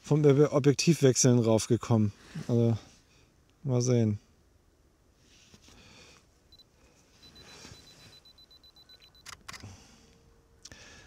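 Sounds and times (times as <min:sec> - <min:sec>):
camera self-timer beeping: 0:06.5 - 0:09.6
camera shutter clicks: 0:09.2 - 0:09.7.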